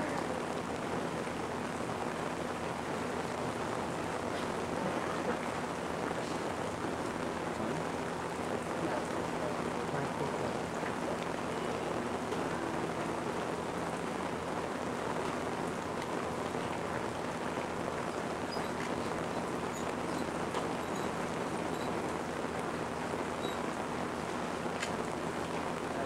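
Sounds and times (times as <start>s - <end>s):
faint low hum: 0.0s - 26.0s
steady hiss-like noise: 0.0s - 26.0s.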